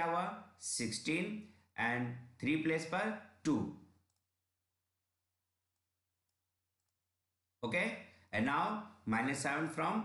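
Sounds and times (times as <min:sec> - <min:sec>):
man's voice: 0:00.0 - 0:03.8, 0:07.6 - 0:10.0.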